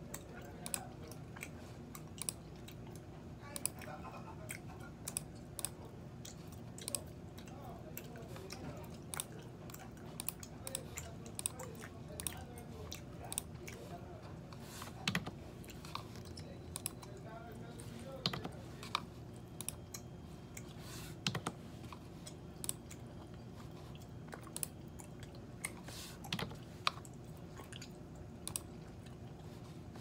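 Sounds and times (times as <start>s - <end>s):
low room hum: 0.0s - 30.0s
gum chewing: 0.1s - 17.3s, 18.8s - 30.0s
keyboard taps and clicks: 15.0s - 15.4s, 18.2s - 19.0s, 21.2s - 21.6s.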